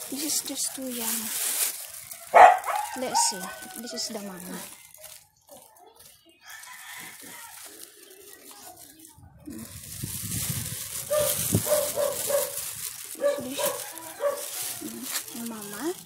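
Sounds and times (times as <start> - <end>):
plastic bag rustling: 0.0 - 16.0.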